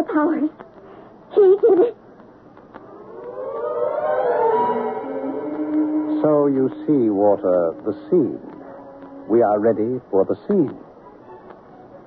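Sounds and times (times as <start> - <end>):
siren-like rising tone: 2.8 - 9.8.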